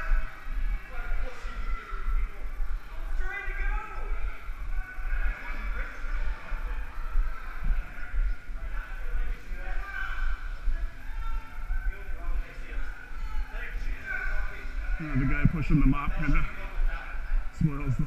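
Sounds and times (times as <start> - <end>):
indistinct voices: 0.0 - 18.0.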